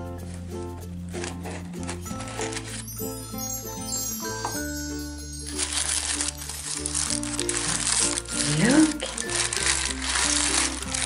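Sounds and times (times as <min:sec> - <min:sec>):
light background music: 0:00.0 - 0:11.0
wrapping paper crinkling: 0:00.2 - 0:03.3, 0:05.3 - 0:11.0.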